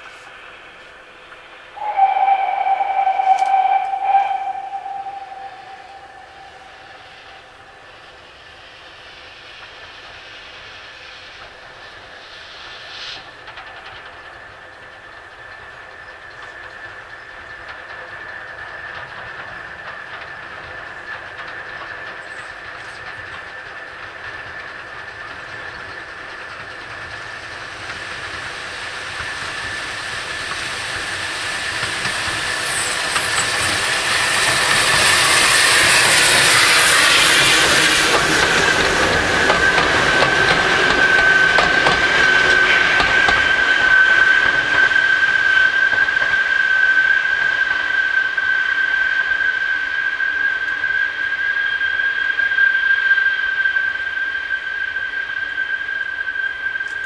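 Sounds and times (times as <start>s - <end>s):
steady high tone from train: 0.0s - 57.0s
steam locomotive exhaust: 0.0s - 57.0s.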